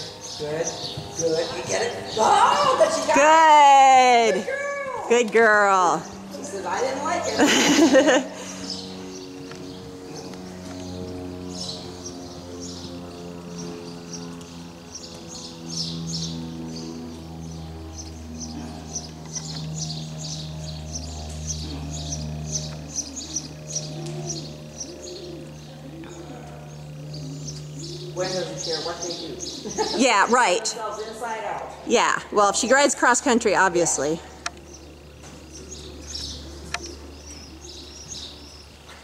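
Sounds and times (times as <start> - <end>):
small birds chirping: 0.0 - 4.4, 5.1 - 39.0
low steady held tones: 0.0 - 39.0.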